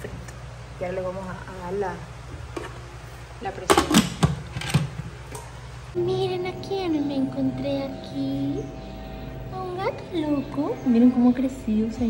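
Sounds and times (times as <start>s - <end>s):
steady low hum: 4.3s - 12.0s.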